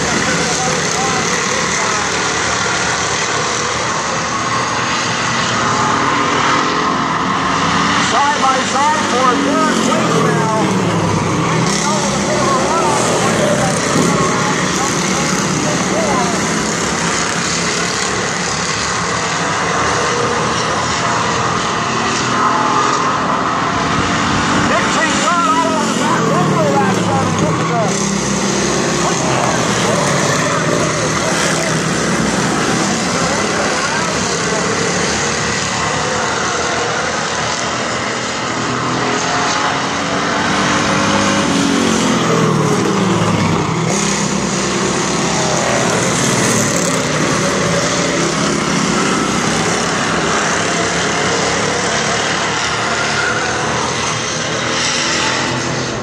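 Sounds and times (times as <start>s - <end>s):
cars passing close by: 0.0s - 56.0s
stock car engines racing: 0.0s - 56.0s.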